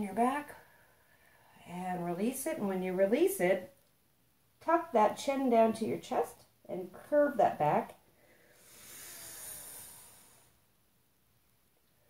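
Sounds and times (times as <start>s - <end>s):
woman breathing in deeply: 8.1s - 10.7s.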